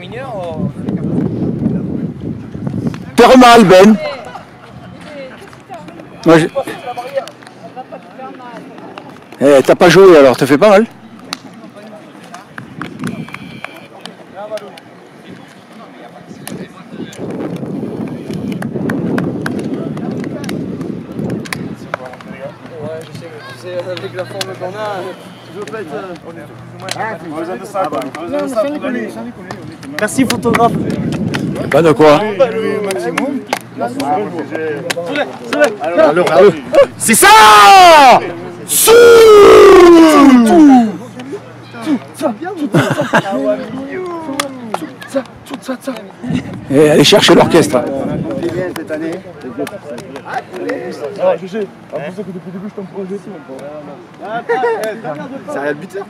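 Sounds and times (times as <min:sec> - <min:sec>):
men talking and calling out: 0:00.0 - 0:56.0
sharp claps or slaps: 0:17.5 - 0:23.1, 0:29.4 - 0:31.9, 0:32.8 - 0:34.2, 0:48.3 - 0:51.2
man yelling in celebration: 0:36.8 - 0:41.0.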